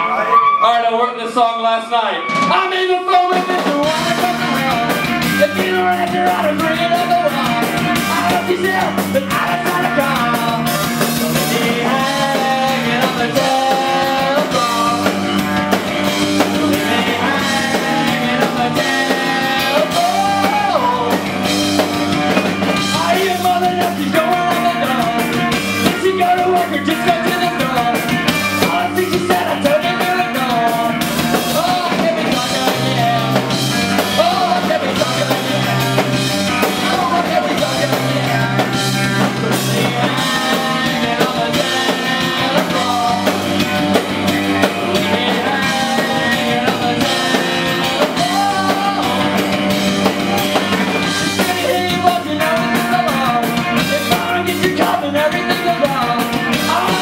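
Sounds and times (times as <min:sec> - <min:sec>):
electric guitars: 0:02.2 - 0:57.0
drum kit hitting: 0:02.3 - 0:57.0.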